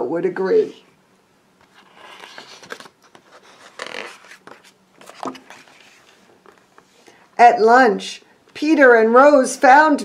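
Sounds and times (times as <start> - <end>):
book page turning: 1.6 - 6.9.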